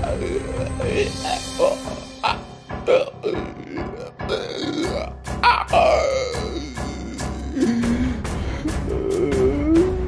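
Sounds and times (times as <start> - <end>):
background music: 0.0 - 10.0
person making throat noises: 0.2 - 10.0.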